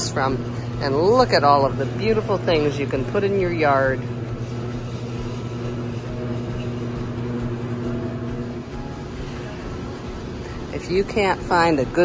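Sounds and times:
ventilation fans humming: 0:00.0 - 0:12.0.

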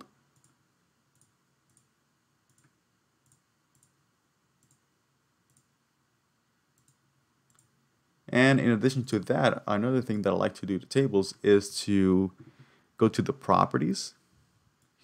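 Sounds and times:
computer mouse clicks: 0:00.0 - 0:04.0, 0:04.6 - 0:04.9, 0:05.5 - 0:05.7, 0:06.8 - 0:07.7.

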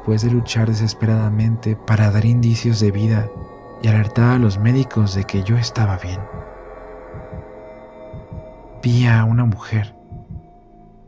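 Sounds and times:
droning background music: 0:00.0 - 0:11.0
heartbeat: 0:03.2 - 0:03.6, 0:06.2 - 0:06.5, 0:07.1 - 0:08.6, 0:10.0 - 0:10.6.

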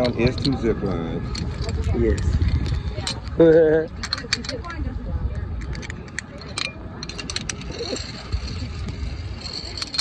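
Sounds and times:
pulley whirring on steel cable: 0:06.4 - 0:10.0.

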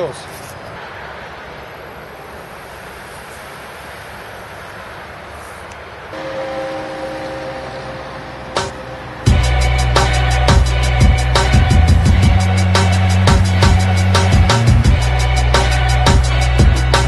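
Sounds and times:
road traffic: 0:00.0 - 0:17.0
steady multi-tone whine: 0:00.0 - 0:17.0.

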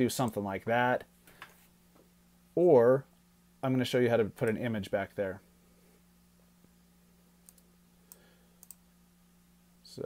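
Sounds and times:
low steady hum: 0:00.0 - 0:10.0
computer mouse clicks: 0:07.4 - 0:08.8.

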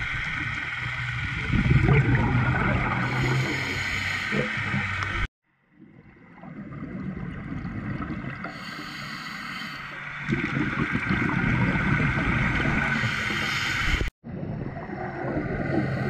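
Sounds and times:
rumble of exhaled bubbles: 0:00.0 - 0:08.8, 0:10.0 - 0:16.0
regulator hiss: 0:02.9 - 0:05.3, 0:08.4 - 0:10.0.

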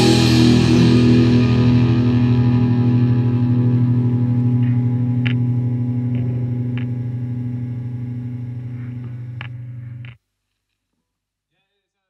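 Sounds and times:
distorted electric guitar chord: 0:00.0 - 0:10.2.

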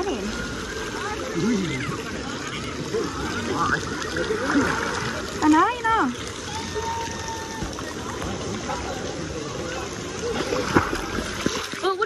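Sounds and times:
people talking: 0:00.0 - 0:06.2
water splashing and lapping: 0:00.0 - 0:12.0.

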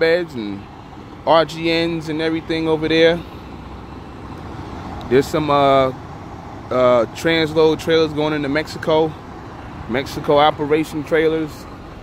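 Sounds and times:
distant vehicle engines rumble: 0:00.0 - 0:12.0.

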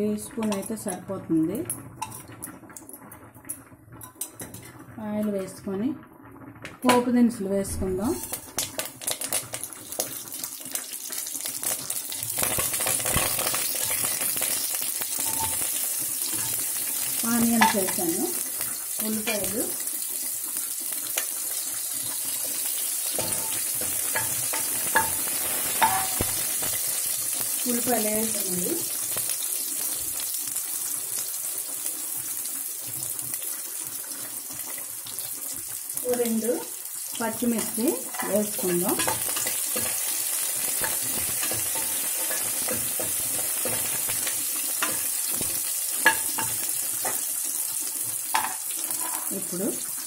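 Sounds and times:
sizzling in oil: 0:00.0 - 0:05.8, 0:06.4 - 0:50.0
seeds crackling in hot oil: 0:00.0 - 0:50.0
metal ladle stirring: 0:23.2 - 0:26.2.

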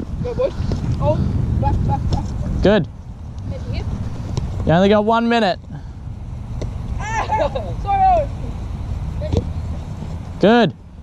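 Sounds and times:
wind rumble on microphone: 0:00.0 - 0:11.0
boys shouting: 0:07.0 - 0:08.5.

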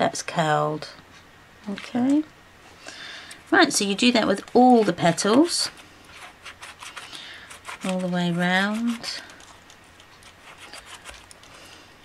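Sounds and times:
embossing tool rubbing on paper: 0:03.4 - 0:11.8.

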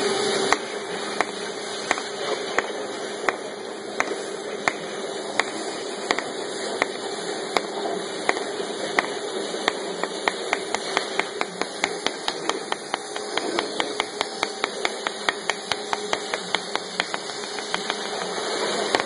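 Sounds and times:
cutting machine hiss and hum: 0:00.0 - 0:19.0.

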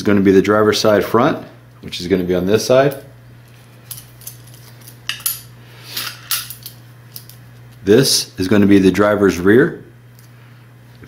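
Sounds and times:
metal lines clinking together: 0:03.8 - 0:07.4.

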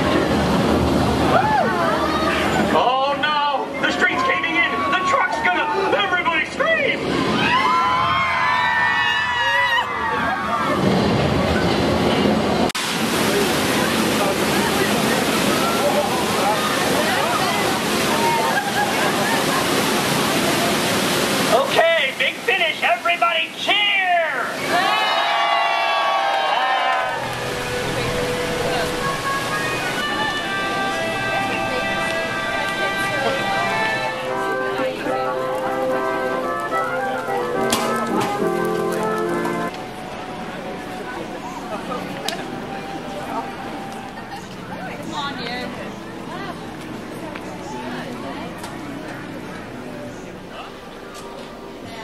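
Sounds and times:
falling water rushing: 0:00.0 - 0:52.0
steady noisy hiss: 0:00.0 - 0:52.0
music with held notes: 0:27.2 - 0:51.8
voices chattering: 0:27.2 - 0:52.0.

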